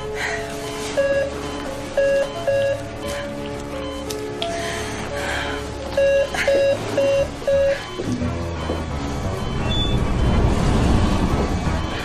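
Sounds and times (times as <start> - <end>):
patient monitor beeps: 0.6 - 4.6, 5.9 - 10.6, 11.8 - 12.0.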